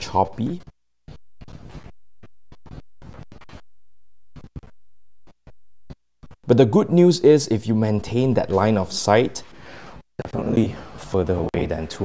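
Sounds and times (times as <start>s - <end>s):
wireless microphone signal breaking up: 4.3s - 7.1s.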